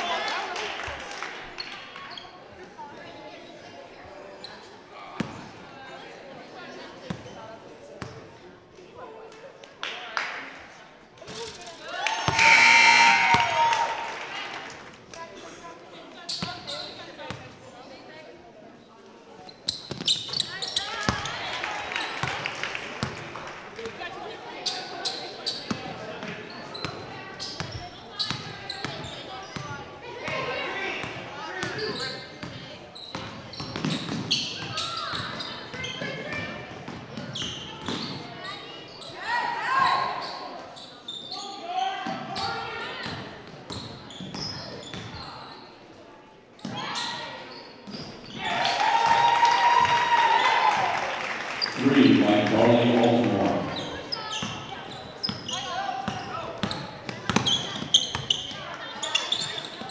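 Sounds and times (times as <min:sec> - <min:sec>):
echoing voices: 0:51.6 - 0:54.1.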